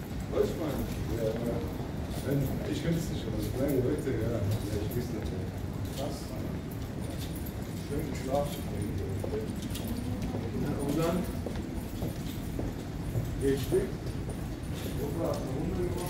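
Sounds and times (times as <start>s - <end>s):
scattered voices in a hall: 0.0s - 16.0s
footsteps on stone floor: 4.4s - 16.0s.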